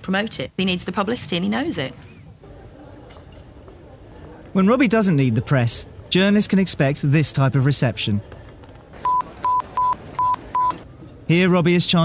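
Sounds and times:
censor bleeps: 9.0 - 10.8.

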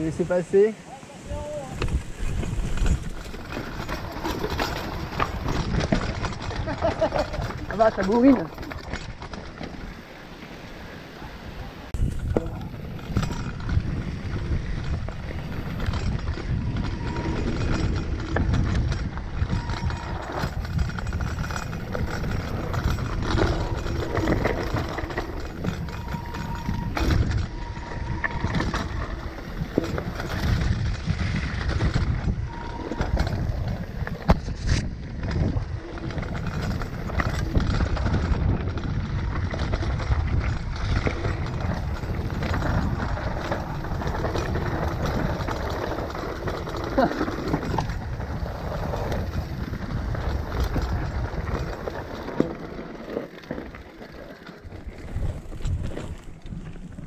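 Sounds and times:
bike tyres rumbling on trail: 0.0 - 57.0
bike knocking and clattering: 1.5 - 10.4, 11.9 - 57.0.

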